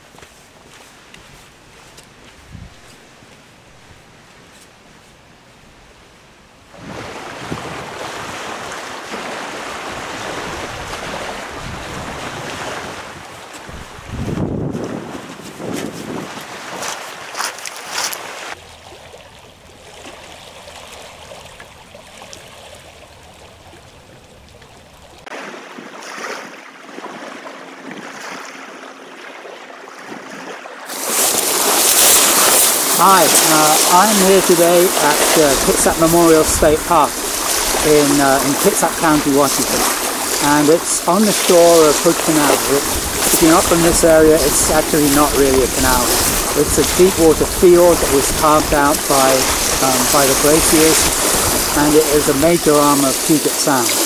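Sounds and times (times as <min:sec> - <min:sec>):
wind buffeting microphone: 0:01.3 - 0:03.0, 0:06.7 - 0:08.8, 0:09.7 - 0:17.4, 0:31.0 - 0:53.3
small waves on rocky shore: 0:06.7 - 0:54.0.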